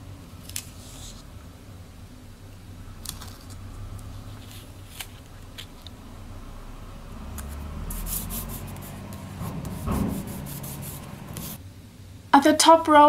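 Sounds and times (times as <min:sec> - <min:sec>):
fingertips rubbing paper sticker: 0:07.4 - 0:11.6.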